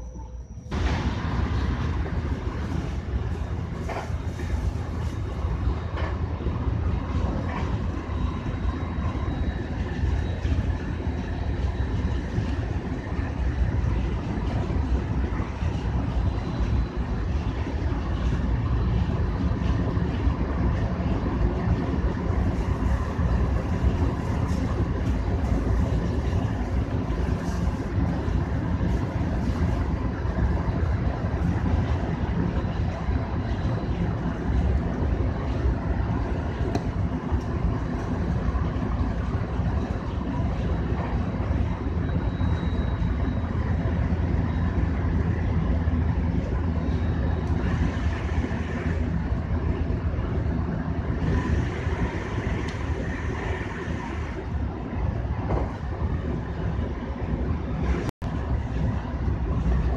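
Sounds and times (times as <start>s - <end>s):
faint steady whine: 0.0s - 59.9s
train wheels rumbling on rails: 0.0s - 59.9s.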